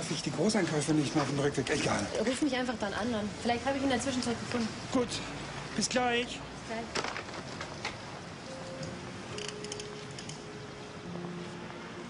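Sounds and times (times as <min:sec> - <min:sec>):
soft background music: 0:08.2 - 0:12.0.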